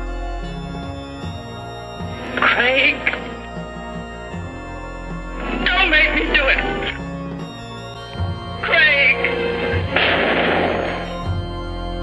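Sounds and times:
wavering high sound: 0:00.0 - 0:11.4
dramatic soundtrack music: 0:00.0 - 0:12.0
loud burst of noise: 0:08.8 - 0:11.3.

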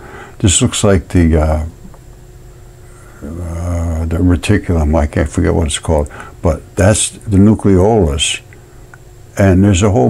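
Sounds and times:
man's drawn-out hesitation sound: 0:03.2 - 0:08.5.

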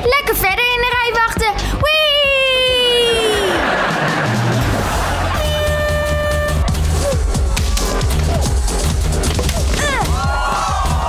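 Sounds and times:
electronic music with low beat: 0:00.0 - 0:11.0.

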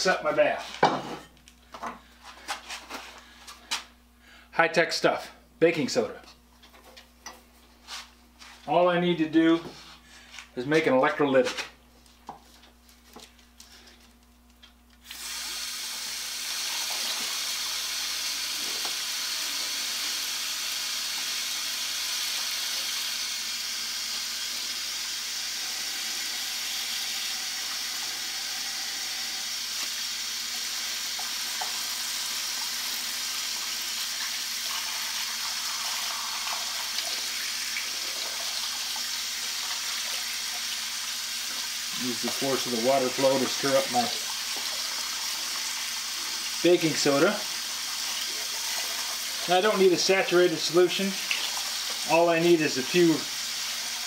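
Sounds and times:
hose water running into tank: 0:15.0 - 0:54.0.

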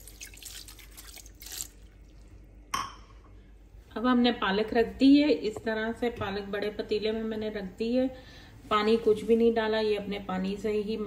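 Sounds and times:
water pouring into a pot: 0:00.0 - 0:02.4.

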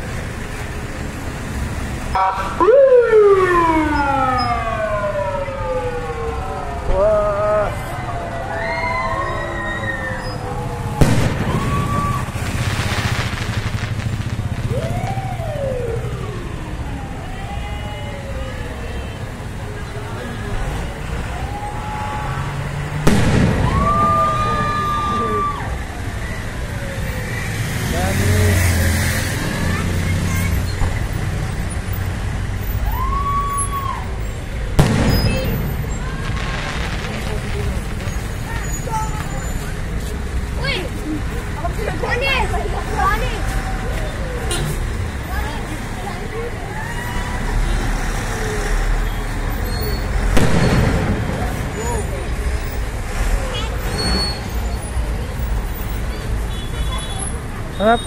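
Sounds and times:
low road noise: 0:00.0 - 0:58.0
emergency vehicle siren wailing: 0:02.1 - 0:12.5, 0:13.4 - 0:29.3, 0:32.6 - 0:37.8, 0:42.5 - 0:45.5, 0:46.1 - 0:52.7
people whooping and cheering: 0:06.4 - 0:12.5, 0:14.6 - 0:19.3, 0:21.1 - 0:22.6, 0:23.4 - 0:27.1, 0:32.7 - 0:34.3, 0:43.2 - 0:44.5, 0:46.5 - 0:47.8
firework bang: 0:11.0 - 0:15.1, 0:23.0 - 0:24.9, 0:34.8 - 0:38.7, 0:50.2 - 0:52.4.

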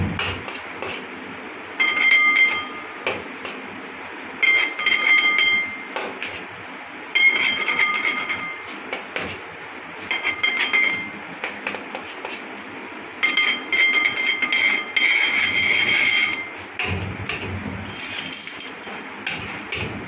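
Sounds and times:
palette knife scraping metal: 0:00.5 - 0:01.1, 0:10.0 - 0:12.4, 0:13.2 - 0:20.0.

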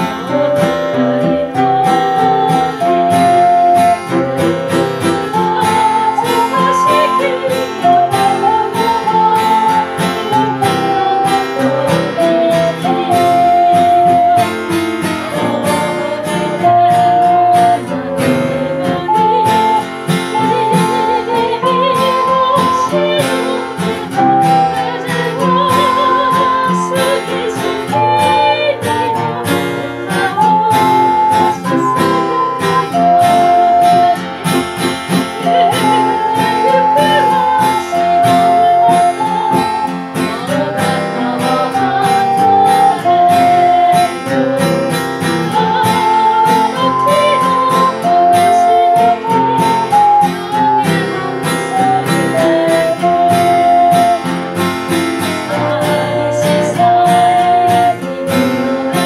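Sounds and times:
ocarina melody: 0:00.0 - 0:59.0
plucked string accompaniment: 0:00.0 - 0:59.0
voices singing: 0:00.0 - 0:59.0.

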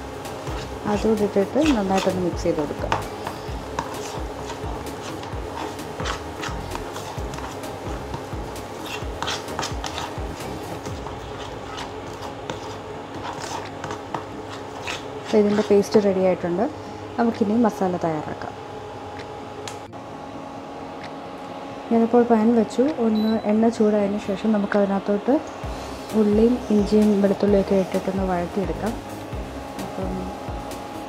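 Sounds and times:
spoon scraping paste in a bowl: 0:00.3 - 0:16.0
person speaking: 0:00.8 - 0:03.2, 0:29.8 - 0:30.4.

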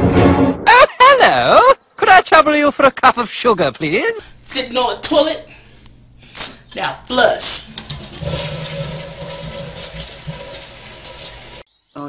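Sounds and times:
toilet flushing: 0:07.7 - 0:11.6.

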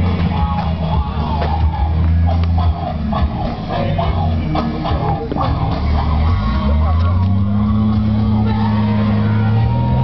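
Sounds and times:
engine revving under load: 0:00.0 - 0:10.0
voices: 0:00.0 - 0:10.0.

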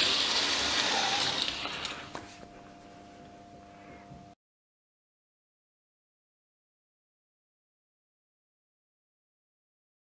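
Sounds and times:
model train motor whirring on track: 0:00.0 - 0:02.1.

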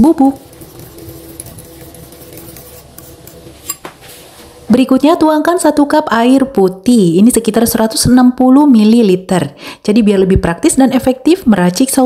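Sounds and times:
spoon stirring thick sauce: 0:00.0 - 0:04.0.

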